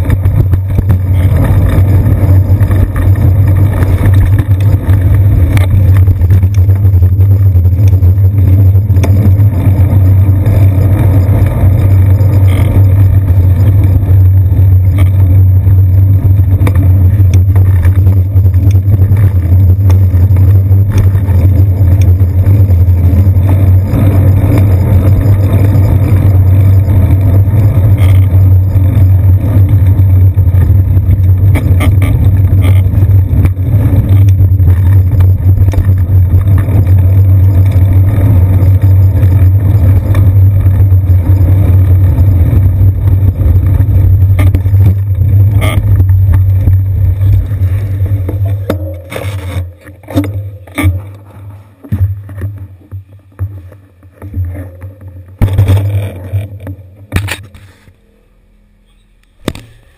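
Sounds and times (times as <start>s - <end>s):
short clicks from bumps: 0.0s - 47.4s, 48.2s - 57.7s
street traffic: 0.0s - 59.9s
wind and road vibration: 0.0s - 59.9s.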